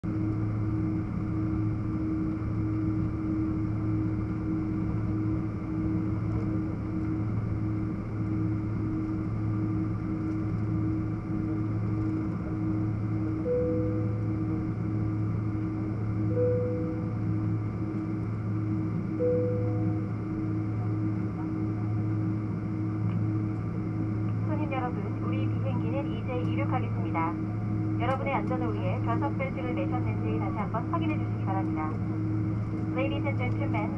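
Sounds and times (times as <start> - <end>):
aircraft cabin drone: 0.0 - 33.9
cabin announcement voice: 24.3 - 32.2, 32.8 - 33.9.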